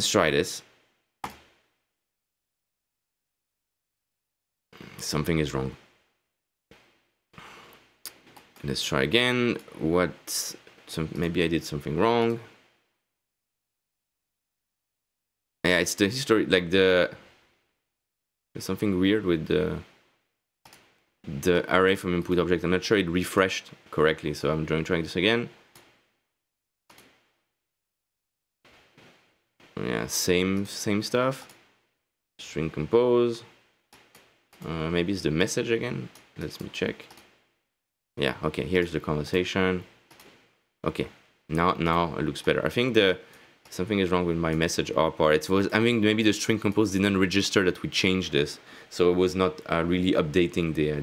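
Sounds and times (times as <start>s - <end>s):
computer mouse click: 20.6s - 20.9s, 26.9s - 27.2s, 37.0s - 37.3s, 40.1s - 40.4s
faint rush of noise: 28.7s - 37.5s.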